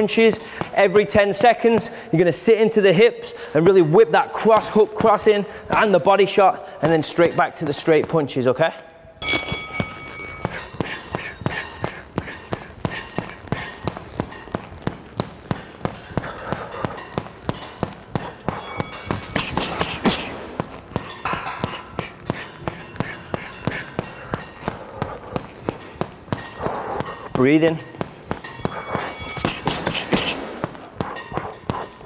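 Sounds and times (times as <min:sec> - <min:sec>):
gloves punching heavy bag: 0:00.0 - 0:08.4, 0:09.2 - 0:32.0.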